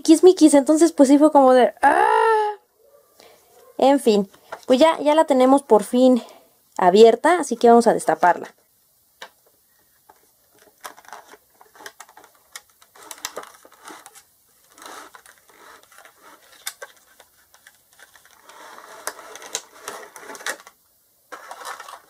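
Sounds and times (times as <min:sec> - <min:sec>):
plastic packaging clicks: 0:10.1 - 0:22.0
plastic tray scraping rustles: 0:10.5 - 0:22.0.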